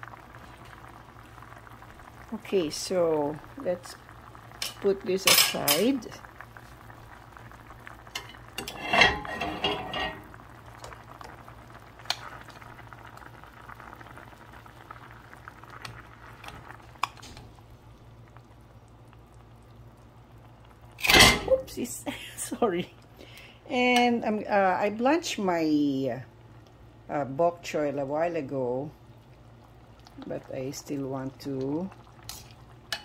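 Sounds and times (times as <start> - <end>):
sauce bubbling in a skillet: 0.0 - 33.0.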